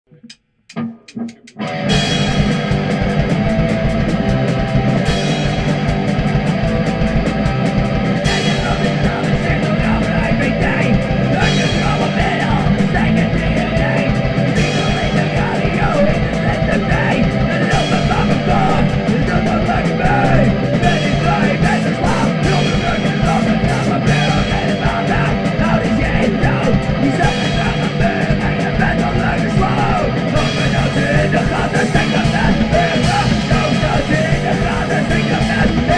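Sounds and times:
punk guitars: 0.1s - 35.9s
fast drumming: 0.2s - 35.9s.

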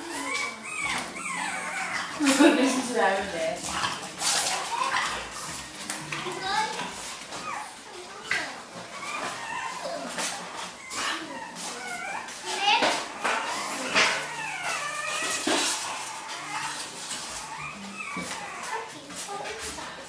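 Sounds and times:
children's voices: 0.0s - 20.0s
puppies yelping and whining: 0.0s - 20.0s.

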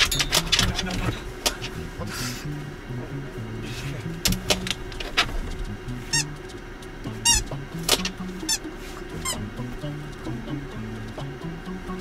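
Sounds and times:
squeaky dog toy: 6.1s - 6.3s, 7.2s - 7.5s, 8.4s - 9.4s
sharp clicks: 7.8s - 8.5s.

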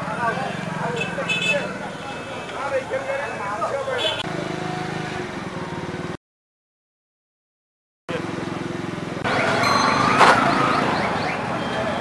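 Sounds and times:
street voices: 0.0s - 6.2s, 8.1s - 12.0s.

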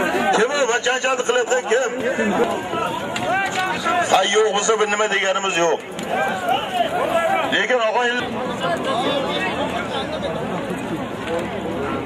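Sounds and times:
men talking: 0.0s - 10.5s
crowd noise: 0.0s - 12.0s.

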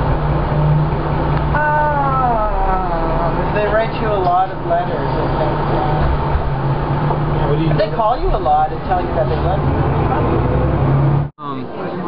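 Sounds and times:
steady low rumble: 0.0s - 10.9s
voices talking: 1.6s - 10.8s.

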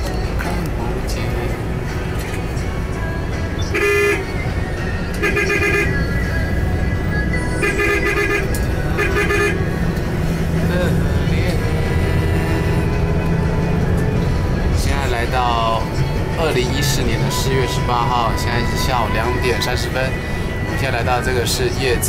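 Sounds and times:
engine and road rumble: 0.0s - 22.0s
vehicle horn honking: 3.6s - 6.6s, 7.3s - 10.7s.

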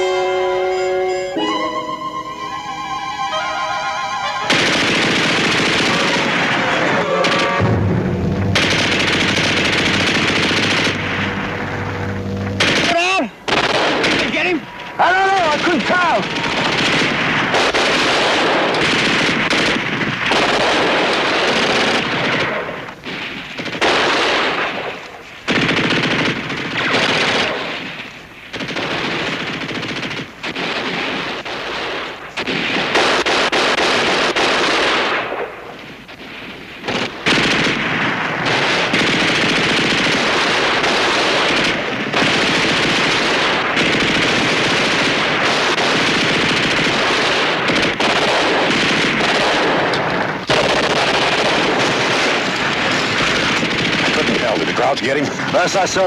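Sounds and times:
machine-gun and rifle fire: 4.5s - 56.0s.

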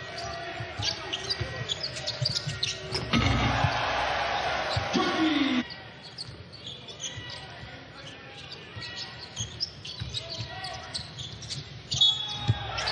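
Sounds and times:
sneaker squeaks: 0.0s - 3.8s, 5.6s - 12.9s
faint crowd murmur: 0.0s - 12.9s.

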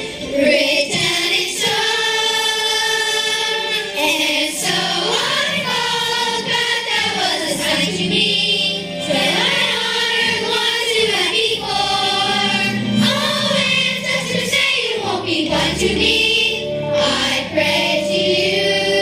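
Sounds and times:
children's chorus singing: 0.0s - 19.0s.

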